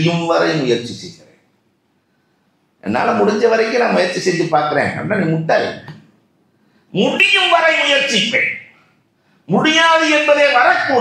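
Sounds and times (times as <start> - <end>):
man speaking into a microphone: 0.0 - 1.4, 2.8 - 6.1, 6.9 - 11.0.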